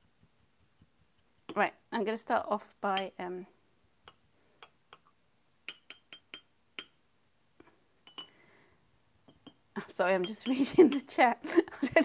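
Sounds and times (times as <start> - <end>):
glass and brush clinking jars: 5.7 - 7.0, 8.0 - 8.4, 10.2 - 11.2.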